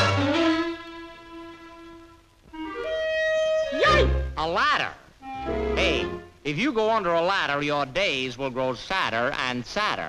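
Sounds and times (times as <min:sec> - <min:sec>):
clarinet notes: 0:00.0 - 0:04.5, 0:05.2 - 0:06.5.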